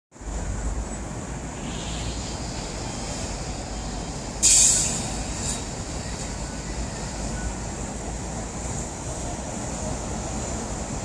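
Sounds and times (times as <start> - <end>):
city traffic rumble: 0.1 - 11.0
air brake hiss: 1.6 - 3.2, 4.4 - 5.8.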